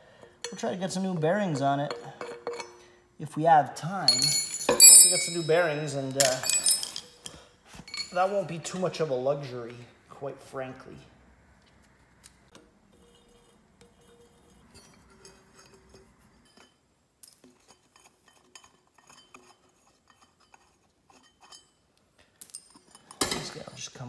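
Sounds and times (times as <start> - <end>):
faint metal clinks and taps: 1.8 - 2.9, 4.1 - 8.3, 13.8 - 23.7.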